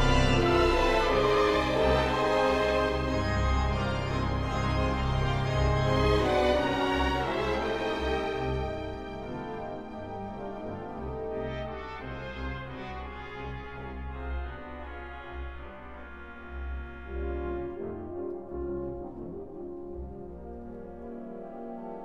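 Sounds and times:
pipe organ and orchestra chords: 0:00.0 - 0:22.0.

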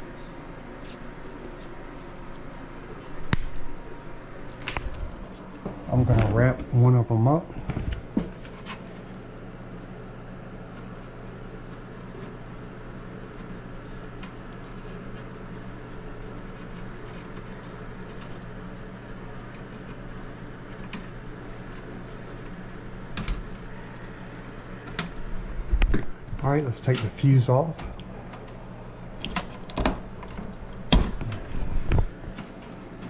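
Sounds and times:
low electrical hum: 0:00.0 - 0:33.0
faint clicks of handling wires: 0:00.7 - 0:06.3.

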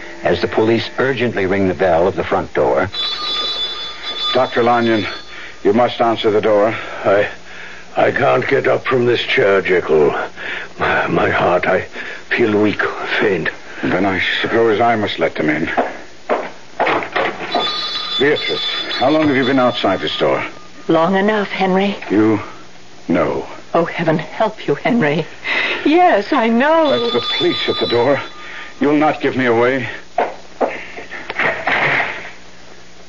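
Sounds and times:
door bell ringing: 0:02.9 - 0:05.9, 0:17.4 - 0:21.3, 0:26.8 - 0:29.4.

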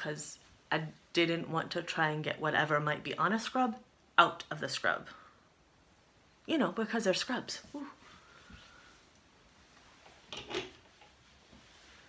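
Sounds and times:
clothes on hangers handled: 0:08.6 - 0:12.0.

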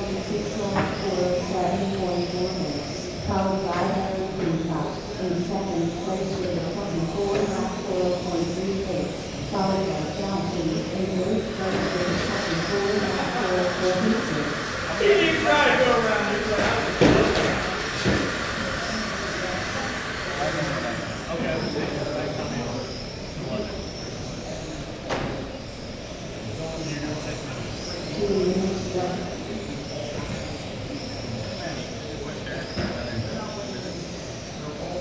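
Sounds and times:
people talking in a hall: 0:00.0 - 0:35.0.

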